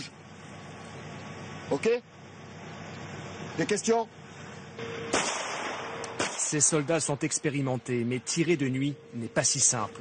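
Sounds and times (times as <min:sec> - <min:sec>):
gunshot: 0:05.1 - 0:06.7
hiss after gunshot: 0:05.1 - 0:06.7.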